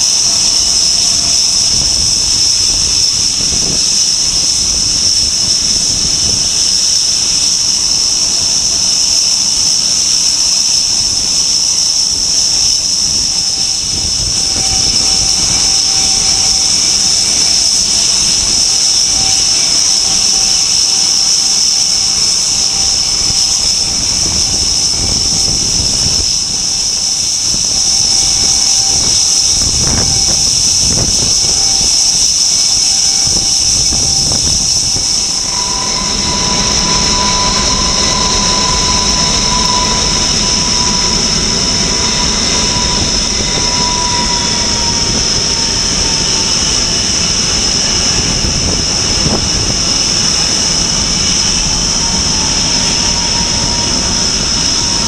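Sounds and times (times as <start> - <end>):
jet engines rumbling: 0.0 - 55.0
jet engines whining: 0.0 - 55.0.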